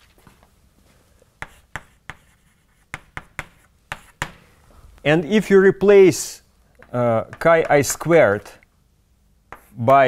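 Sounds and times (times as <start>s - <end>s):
chalk scratching on blackboard: 1.4s - 4.4s, 9.5s - 9.9s
chalk tapping on blackboard: 1.4s - 4.4s, 6.8s - 7.8s, 9.5s - 9.8s.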